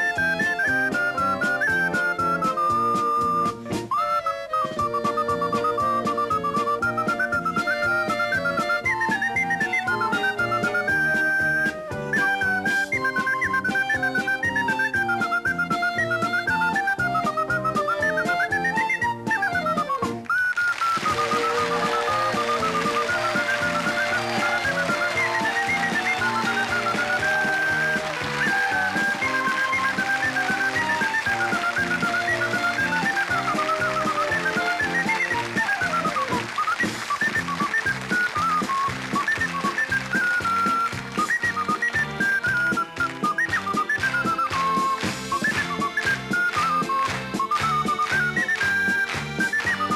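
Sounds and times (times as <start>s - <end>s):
audience clapping along: 0.0s - 3.8s, 4.6s - 49.9s
ocarina playing polka: 0.0s - 49.9s
rhythmic accompaniment: 0.0s - 49.9s.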